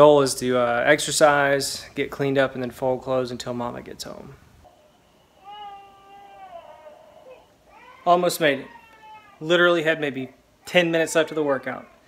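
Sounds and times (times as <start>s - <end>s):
baby crying through monitor speaker: 4.7s - 9.5s.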